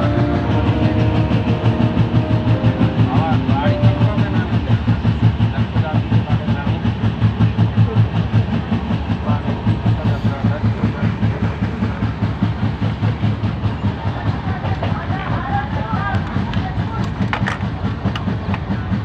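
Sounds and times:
train wheels rumbling on rails: 0.0s - 19.0s.

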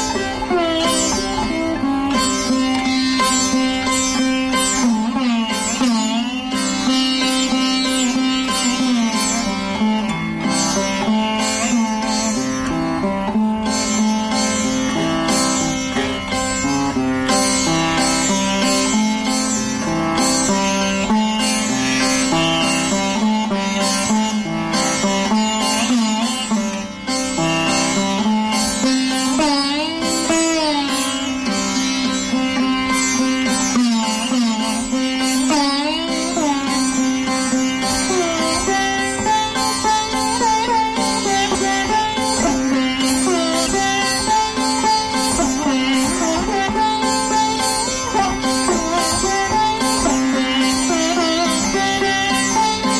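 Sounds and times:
solo sitar over a drone: 0.0s - 52.9s.

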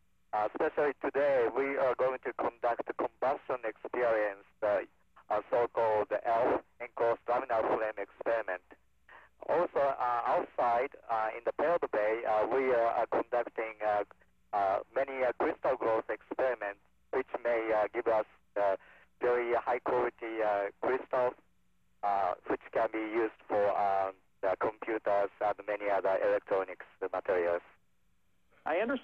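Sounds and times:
faint steady hum: 0.0s - 29.0s
man speaking over radio: 0.4s - 21.4s, 22.0s - 27.7s.

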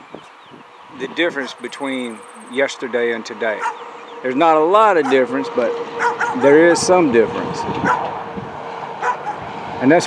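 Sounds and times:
wind on microphone: 0.0s - 1.6s, 5.9s - 10.0s
man talking: 0.9s - 7.7s, 9.8s - 10.0s
distant dogs barking: 1.1s - 9.6s.

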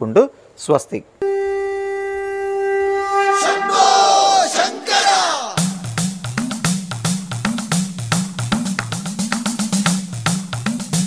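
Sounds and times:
crowd battle cry: 3.4s - 5.7s
drum-led music: 4.4s - 11.0s.

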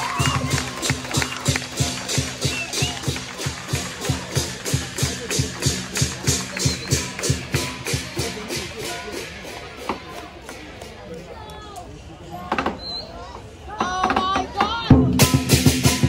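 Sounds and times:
big drum beating: 0.0s - 10.9s, 13.8s - 16.0s.

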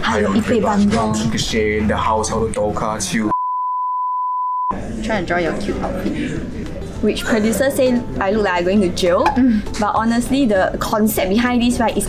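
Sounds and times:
steady electronic beep: 3.3s - 4.7s.

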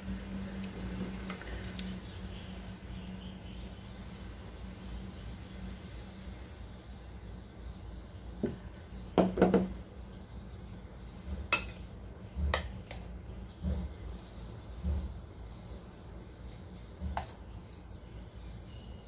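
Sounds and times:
utensils clinking against bowls: 11.5s - 11.8s.

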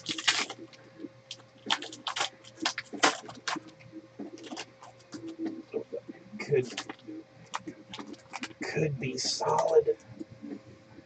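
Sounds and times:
foil wrapper crinkling: 0.0s - 3.7s, 4.3s - 5.4s, 6.6s - 8.7s.

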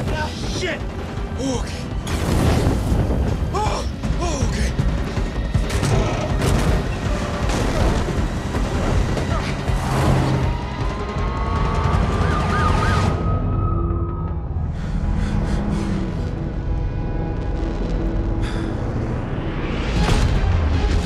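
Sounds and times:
action film music: 0.0s - 21.0s
police siren wailing: 8.9s - 14.6s.

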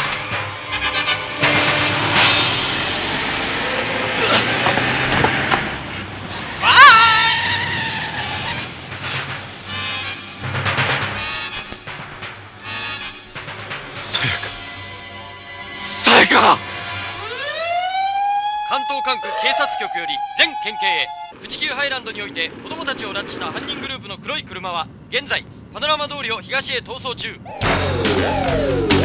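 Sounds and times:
van engine revving: 1.2s - 6.6s.

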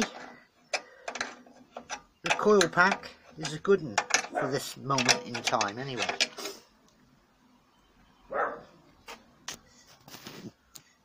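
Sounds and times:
spanner scrape: 0.0s - 6.6s
spanner clicking on metal: 0.7s - 6.4s.

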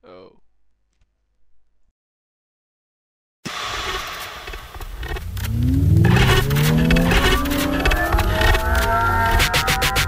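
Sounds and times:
car engine revving up: 3.5s - 10.0s
loud rushing noise: 3.5s - 10.0s.

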